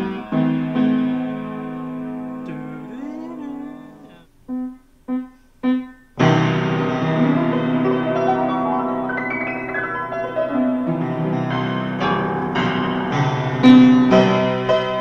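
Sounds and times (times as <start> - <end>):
upright piano chords: 0.0 - 15.0.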